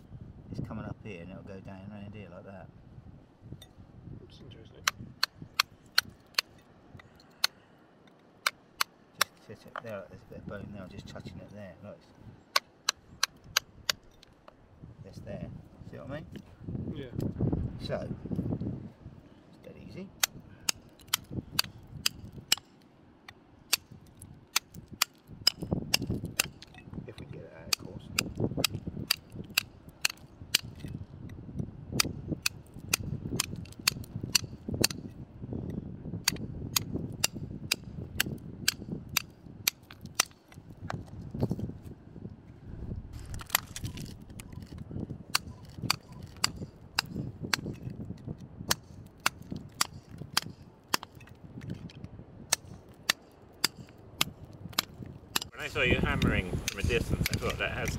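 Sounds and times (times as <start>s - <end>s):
hammer striking chisel into rock: 24.6s - 26.8s, 32.0s - 35.1s.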